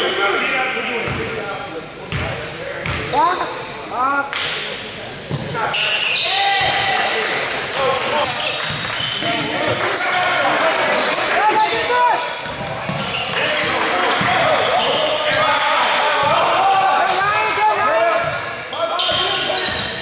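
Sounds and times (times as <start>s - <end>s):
sneakers squeaking: 0.0s - 1.5s, 2.1s - 6.8s, 8.2s - 20.0s
basketball bouncing on wooden court: 12.4s - 13.4s.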